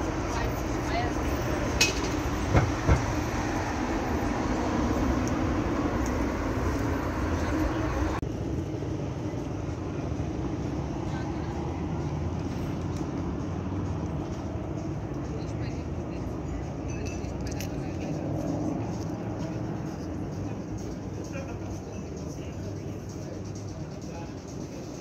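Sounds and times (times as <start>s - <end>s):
outdoor city background: 0.0s - 25.0s
traffic rumble: 0.0s - 25.0s.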